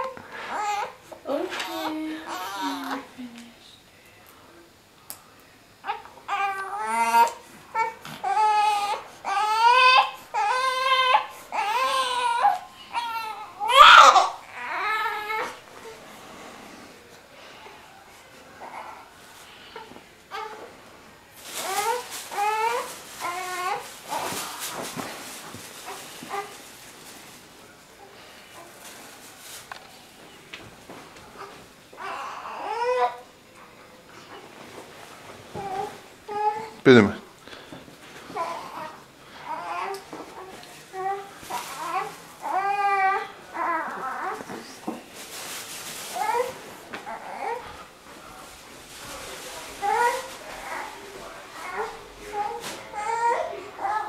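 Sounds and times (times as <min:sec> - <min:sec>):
newborn baby whimpering: 0:00.0 - 0:03.2, 0:05.8 - 0:16.0, 0:18.6 - 0:19.1, 0:21.6 - 0:24.8, 0:31.4 - 0:33.2, 0:35.6 - 0:36.8, 0:38.3 - 0:44.8, 0:46.1 - 0:47.7, 0:49.8 - 0:51.0, 0:51.6 - 0:54.0.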